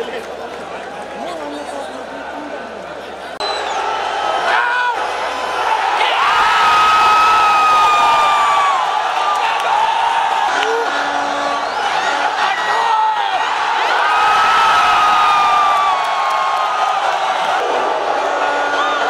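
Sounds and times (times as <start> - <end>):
stadium crowd cheering and shouting: 0.0 - 19.0.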